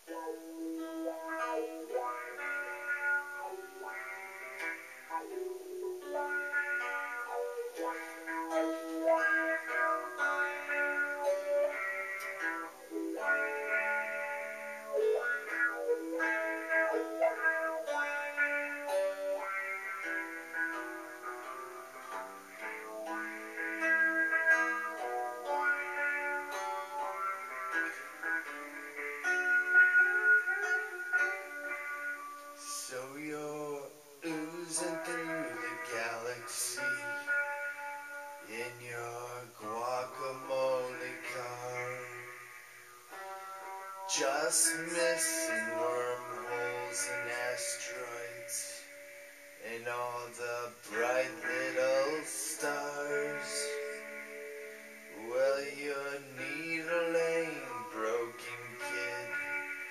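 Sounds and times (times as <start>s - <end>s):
solo guitar playing: 0.0s - 59.9s.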